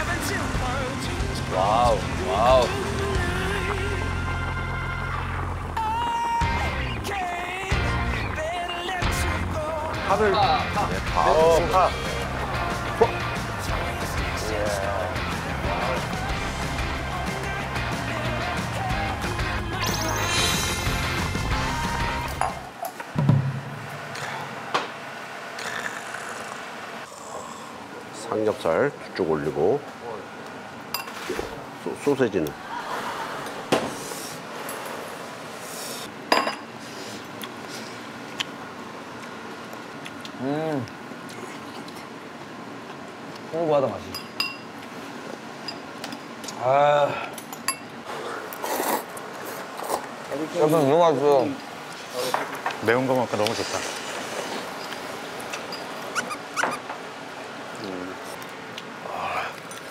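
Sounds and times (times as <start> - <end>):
noodles being slurped: 48.2 - 50.1
short rising squeaks: 56.1 - 56.9.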